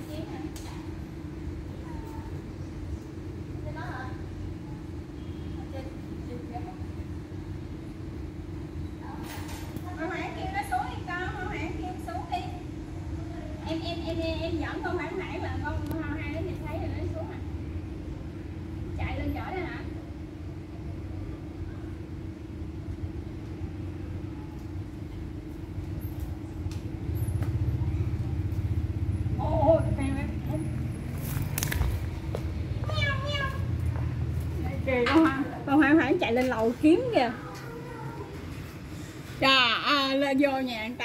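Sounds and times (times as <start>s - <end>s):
constant hum: 0.0s - 41.0s
low background rumble: 10.0s - 39.8s.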